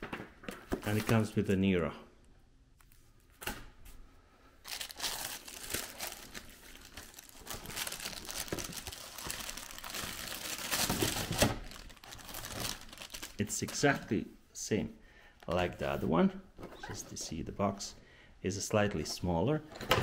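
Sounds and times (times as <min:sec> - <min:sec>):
plastic bag crinkling: 0:04.6 - 0:14.0.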